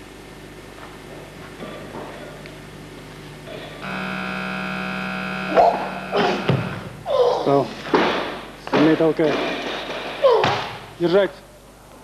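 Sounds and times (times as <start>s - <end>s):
steady buzzer tone: 3.8s - 7.0s.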